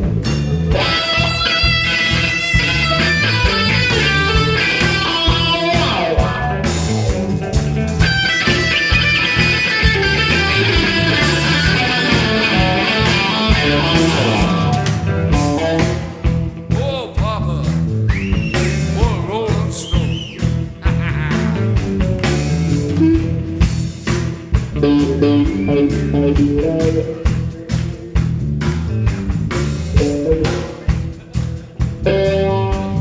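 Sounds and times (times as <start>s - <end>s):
bass: 0.0s - 33.0s
drums: 0.0s - 33.0s
electric guitar lead: 0.0s - 33.0s.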